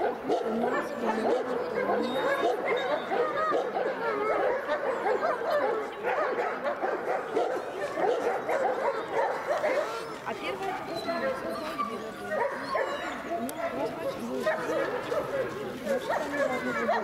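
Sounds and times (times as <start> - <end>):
people talking: 0.3 - 6.1, 9.6 - 17.0
dogs yipping and whining: 0.4 - 10.2, 10.9 - 14.9.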